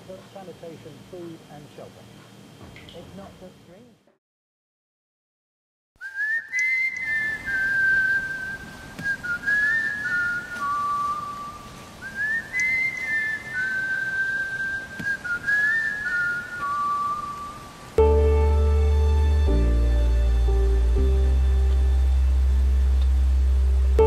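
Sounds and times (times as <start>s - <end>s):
person whistling a tune: 6.0s - 17.7s.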